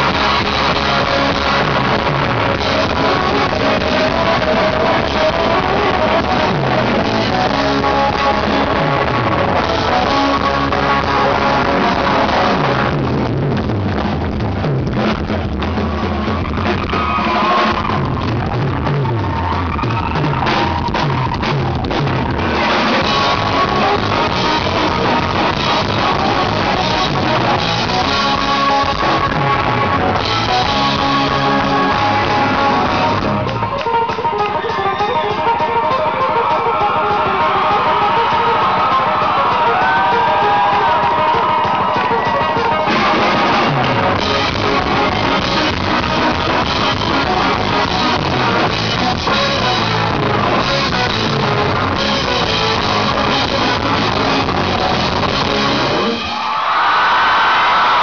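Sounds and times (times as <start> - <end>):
fiddle lead: 0.0 - 13.4, 16.0 - 56.2
bass: 0.0 - 56.5
drum kit: 0.0 - 58.0
electric guitar: 0.0 - 58.0
sliding melody notes: 20.3 - 56.2.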